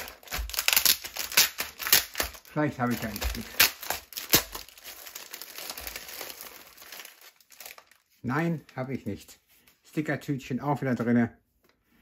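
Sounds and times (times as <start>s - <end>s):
plastic bag crinkling: 0.0s - 9.0s.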